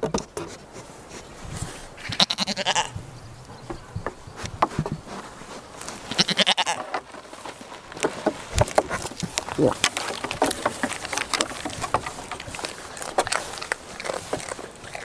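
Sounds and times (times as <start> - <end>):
goat bleating: 2.0 - 3.0, 6.1 - 6.9
hooves knocking on wooden deck: 3.5 - 15.0.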